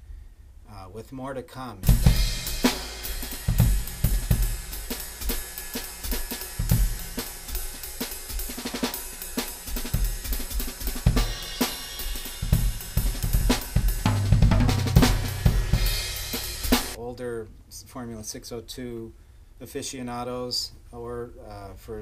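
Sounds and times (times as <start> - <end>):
cymbal crashes and rides: 1.8 - 17.0
drum kit groove: 1.8 - 17.0.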